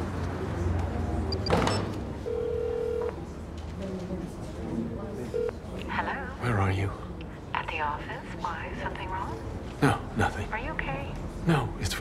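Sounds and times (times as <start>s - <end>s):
phone ringing tone: 2.2s - 3.2s, 5.3s - 5.7s.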